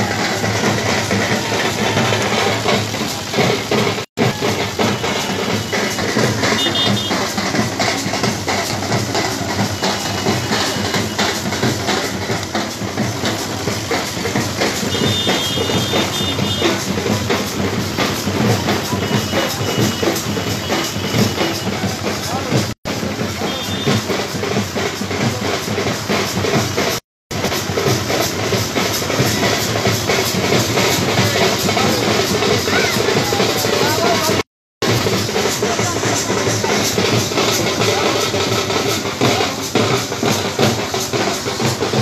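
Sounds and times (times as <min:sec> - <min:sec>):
crowd voices: 0:00.0 - 0:26.4, 0:28.9 - 0:42.0
drums beating: 0:00.0 - 0:42.0.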